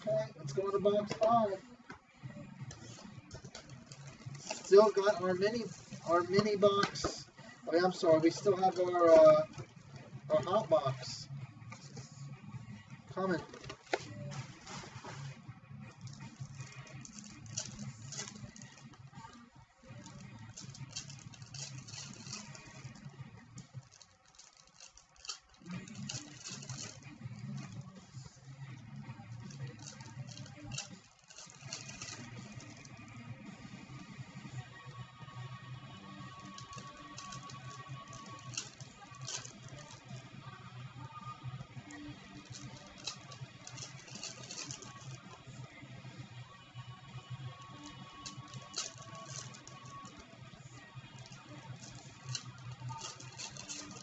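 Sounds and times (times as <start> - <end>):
quiet background music: 0.0 - 54.0
cards rustling: 2.7 - 7.3, 7.9 - 11.0, 13.2 - 28.5, 29.2 - 33.2, 36.2 - 40.3, 41.6 - 45.6, 47.6 - 54.0
foil wrappers crinkling: 3.4 - 7.2, 13.6 - 15.4, 16.0 - 19.0, 19.9 - 27.9, 29.4 - 33.1, 36.3 - 40.2, 41.9 - 45.3, 47.6 - 50.2, 51.2 - 54.0.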